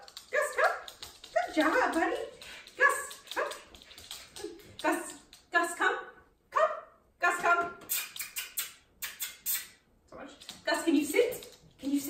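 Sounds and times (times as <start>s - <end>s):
dog barking and yipping: 2.8s - 3.8s.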